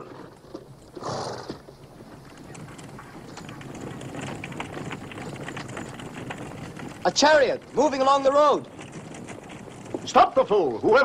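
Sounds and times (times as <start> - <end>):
horse hooves clip-clopping on road: 0.0 - 11.0
chariot rattling: 1.6 - 11.0.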